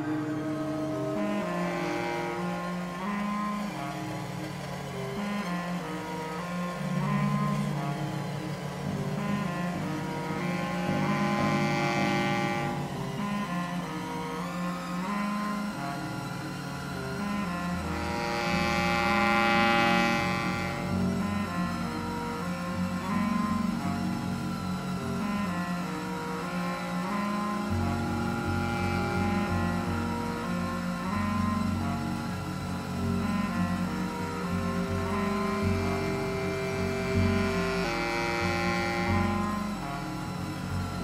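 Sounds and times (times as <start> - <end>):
electric bass: 0.0 - 16.2, 17.0 - 41.0
clarinet held notes: 0.0 - 41.0
electronic drones: 0.0 - 41.0.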